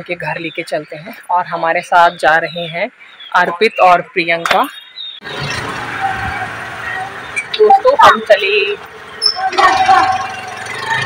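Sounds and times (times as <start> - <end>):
motor vehicle rushing: 5.2 - 11.0.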